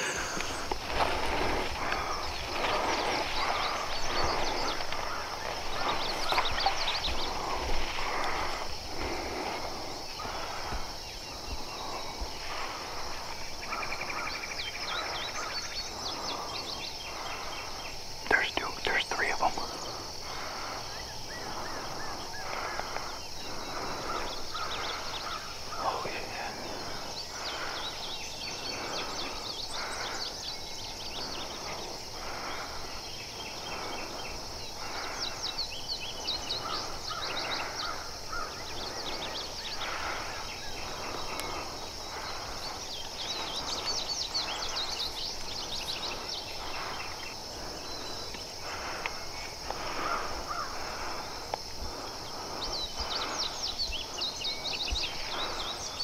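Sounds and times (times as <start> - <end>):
bird chirps: 0.0 - 8.4
pulsing insect call: 0.0 - 56.0
sharp bird calls: 0.0 - 56.0.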